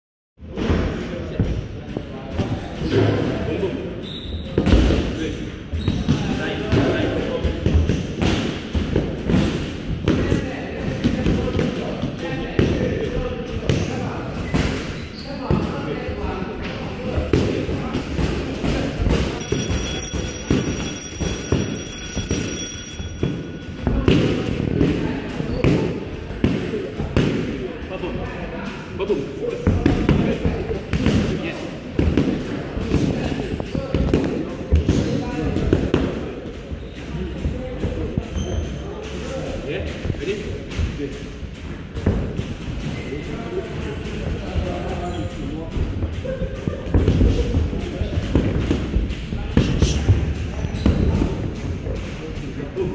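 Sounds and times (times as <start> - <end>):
boxing gloves hitting focus mitts: 45.7 - 52.2.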